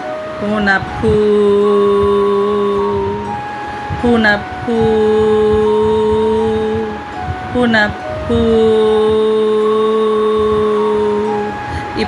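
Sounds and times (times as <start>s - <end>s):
soft meditation music tones: 0.0s - 12.0s
voice humming low: 0.0s - 12.0s.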